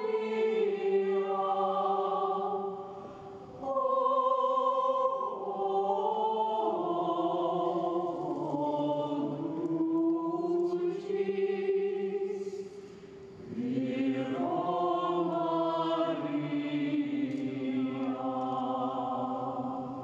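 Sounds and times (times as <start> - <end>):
choir chanting: 0.0 - 12.8, 13.4 - 20.0.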